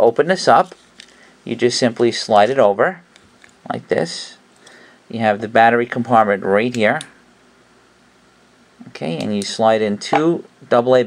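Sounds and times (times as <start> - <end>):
person speaking: 0.0 - 3.0, 8.8 - 11.0.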